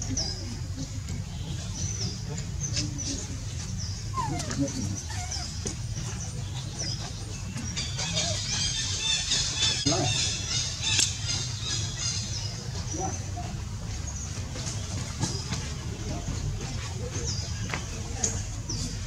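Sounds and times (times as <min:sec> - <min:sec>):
monkeys squeaking and squealing: 0:00.0 - 0:19.0.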